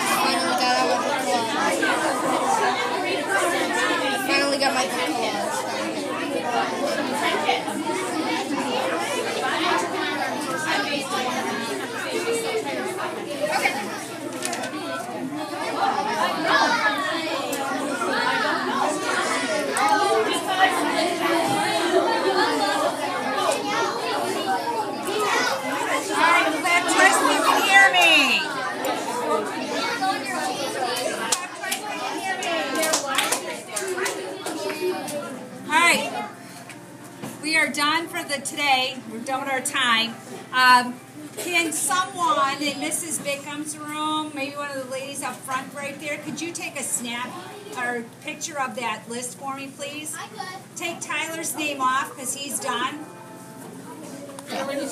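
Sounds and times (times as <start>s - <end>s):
children chattering: 0.0s - 54.9s.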